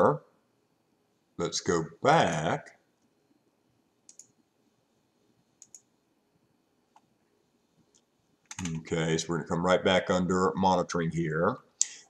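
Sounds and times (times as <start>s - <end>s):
computer mouse clicks: 4.1s - 4.4s, 5.6s - 5.9s, 7.9s - 8.8s.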